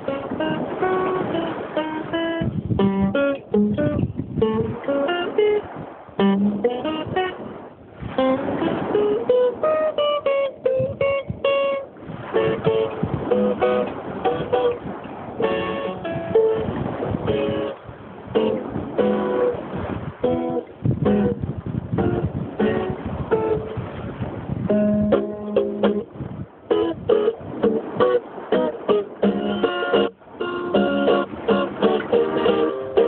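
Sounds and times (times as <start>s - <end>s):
fingerstyle acoustic guitar: 0.0s - 33.0s.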